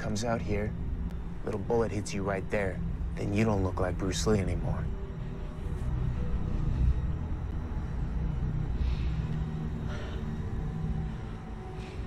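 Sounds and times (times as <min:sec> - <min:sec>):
low rumbling film score drone: 0:00.0 - 0:12.0.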